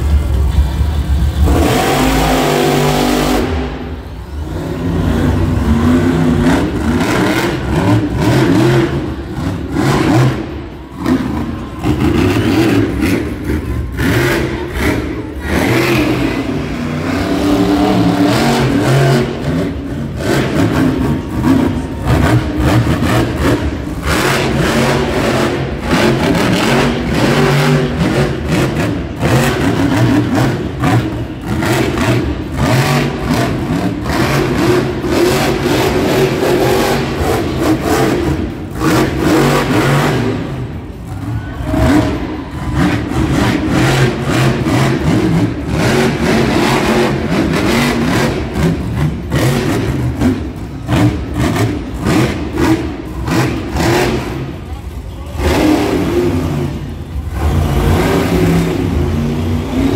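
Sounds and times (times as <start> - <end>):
truck engine revving hard: 0.0 - 59.9.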